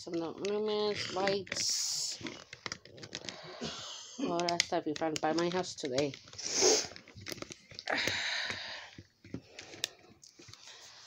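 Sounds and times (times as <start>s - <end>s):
light clicks and taps: 4.3s - 6.2s.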